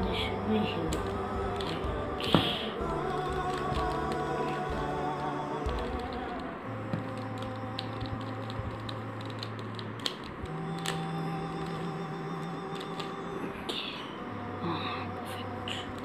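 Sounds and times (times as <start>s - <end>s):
slow background music: 0.0s - 16.0s
puzzle cube layers clicking: 5.6s - 12.0s.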